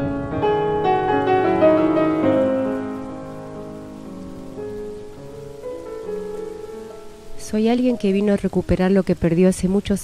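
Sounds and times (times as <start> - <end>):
soft piano music: 0.0 - 10.0
rain on hard wet surface: 0.4 - 10.0.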